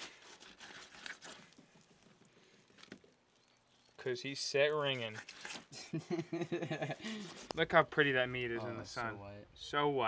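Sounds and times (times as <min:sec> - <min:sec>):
wet fish fillet handling: 0:00.0 - 0:04.1.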